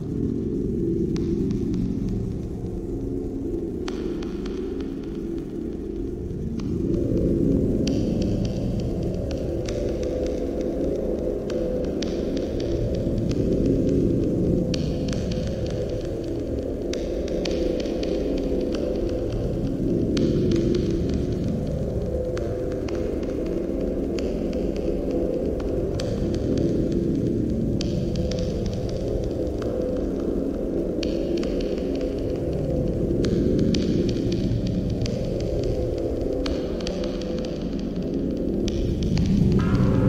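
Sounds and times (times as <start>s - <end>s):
low throbbing drone: 0.0s - 40.0s.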